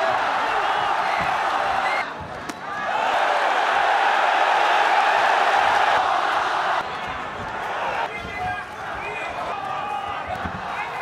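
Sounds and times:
arena crowd cheering: 0.0 - 11.0.

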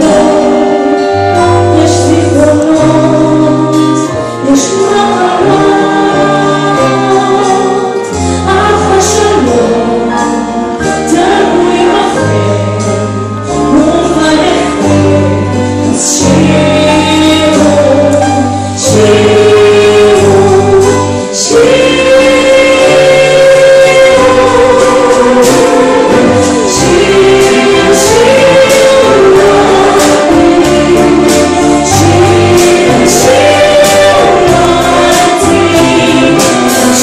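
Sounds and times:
women's choir singing: 0.0 - 10.5, 11.1 - 13.0, 13.9 - 37.0
live band playing: 0.0 - 37.0
piano and strings: 0.0 - 37.0
woman singing lead: 0.0 - 37.0.

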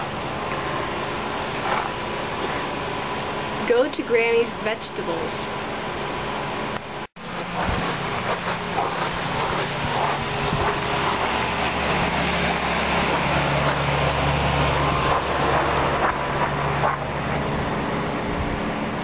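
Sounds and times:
air conditioner units humming: 0.0 - 19.0.

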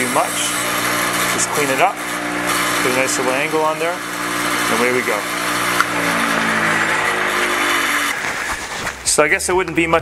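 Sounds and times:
bench grinder winding down: 0.0 - 9.0.

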